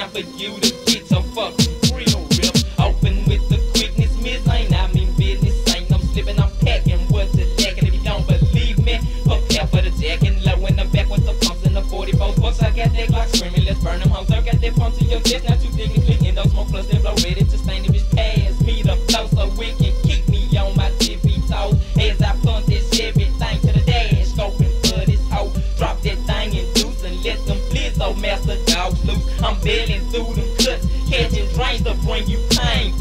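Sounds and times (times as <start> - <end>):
rapping over a beat: 0.0 - 33.0.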